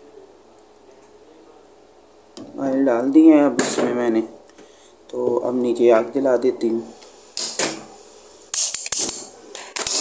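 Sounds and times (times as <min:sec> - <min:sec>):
gas hissing: 0:06.0 - 0:09.5.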